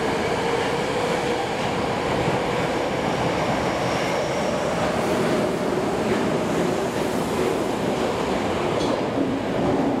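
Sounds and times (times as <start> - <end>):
subway train rolling: 0.0 - 10.0.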